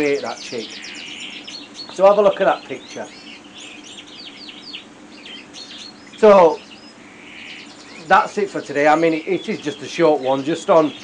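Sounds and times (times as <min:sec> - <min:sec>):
birds chirping and twittering: 0:00.0 - 0:11.0
faint steady hum: 0:00.0 - 0:11.0.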